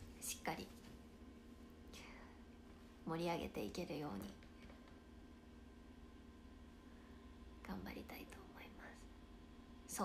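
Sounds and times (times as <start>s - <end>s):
faint steady hum: 0.0s - 10.0s
young woman speaking: 0.2s - 0.9s, 3.0s - 4.4s, 7.6s - 9.0s
young woman whispering: 7.6s - 9.1s.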